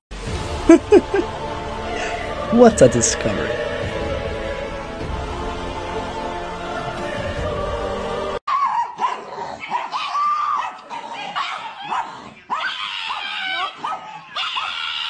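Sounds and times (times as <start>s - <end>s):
music: 0.1s - 8.4s.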